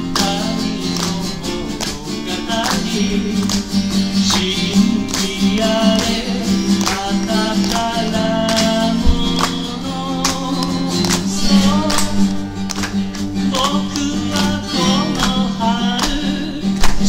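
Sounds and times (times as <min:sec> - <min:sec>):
person singing: 0:00.0 - 0:12.5, 0:13.4 - 0:17.0
acoustic guitar strumming: 0:00.0 - 0:17.0.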